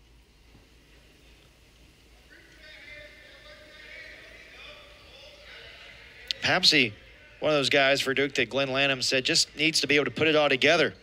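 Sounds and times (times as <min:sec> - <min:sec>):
low steady hum: 0:00.0 - 0:11.0
faint distant voices: 0:00.8 - 0:11.0.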